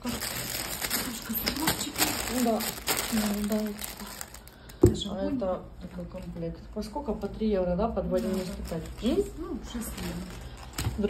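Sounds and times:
plastic packaging crinkling: 0:00.0 - 0:06.4, 0:08.0 - 0:11.0.

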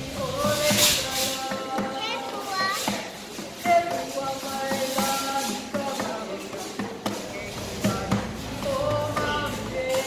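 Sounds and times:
voices singing: 0:00.0 - 0:10.0.

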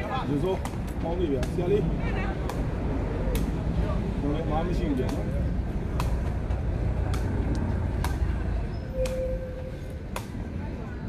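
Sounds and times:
steady low rumble: 0:00.2 - 0:11.0.

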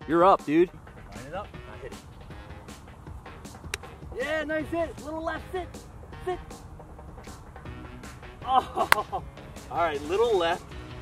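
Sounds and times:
background music: 0:00.0 - 0:11.0
golf club striking ball: 0:02.7 - 0:04.1, 0:06.6 - 0:09.2.

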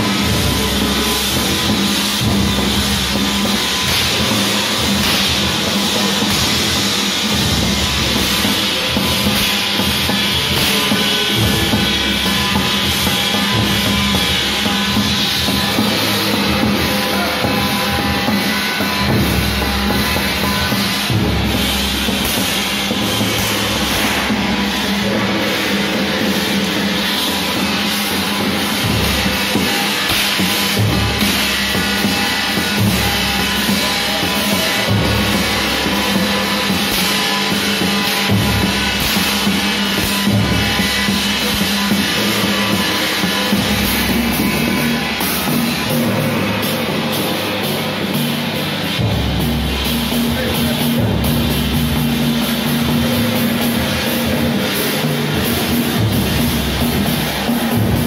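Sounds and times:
clanging brass gong: 0:00.0 - 0:58.0
drum beaten with wooden sticks: 0:00.0 - 0:58.0.

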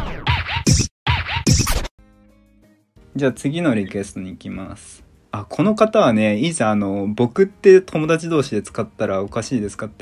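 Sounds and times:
record scratch effect: 0:00.0 - 0:01.9.

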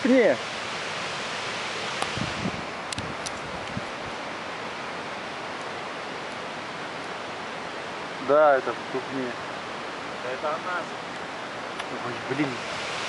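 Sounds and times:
steady rushing noise: 0:00.0 - 0:13.0.

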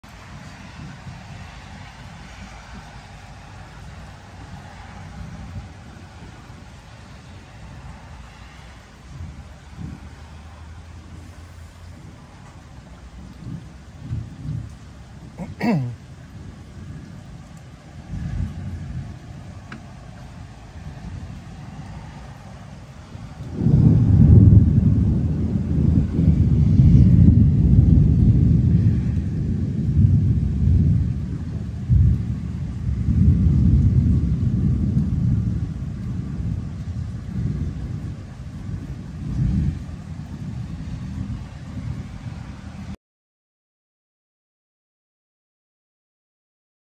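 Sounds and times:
thunder rumbling: 0:00.0 - 0:43.0.

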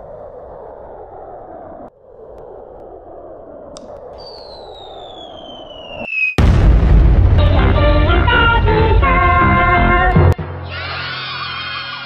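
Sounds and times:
falling whistle: 0:04.1 - 0:06.4
explosion: 0:04.3 - 0:09.8.

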